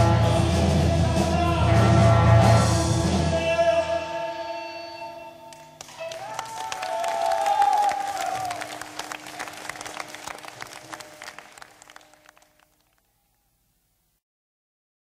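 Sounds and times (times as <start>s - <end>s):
audience applause: 5.8s - 13.1s.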